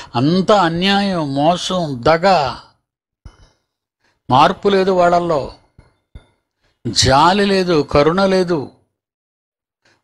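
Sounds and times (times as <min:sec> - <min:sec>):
man speaking into a microphone: 0:00.0 - 0:02.8, 0:04.3 - 0:05.7, 0:06.8 - 0:08.8.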